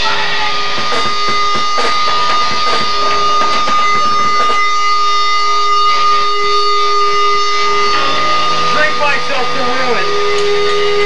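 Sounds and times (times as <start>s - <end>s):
high amplifier feedback whine: 0.0s - 11.0s.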